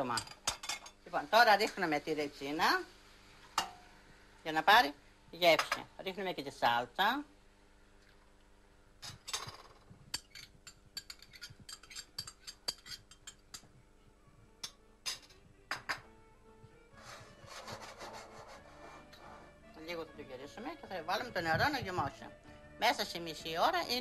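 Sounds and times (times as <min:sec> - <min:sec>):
metal spoon clinking in pot: 0:09.2 - 0:13.7.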